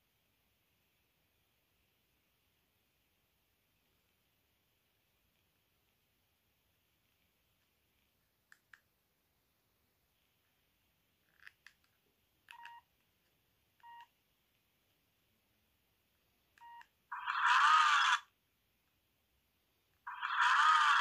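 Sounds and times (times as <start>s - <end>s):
phone keypad beeps: 12.5s - 12.9s, 13.8s - 14.1s, 16.6s - 16.9s
rough phone menu sounds: 16.6s - 18.4s, 20.1s - 21.0s.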